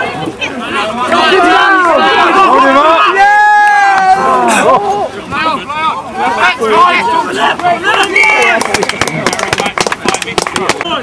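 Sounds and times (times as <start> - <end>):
people shouting outdoors: 0.0 - 9.2.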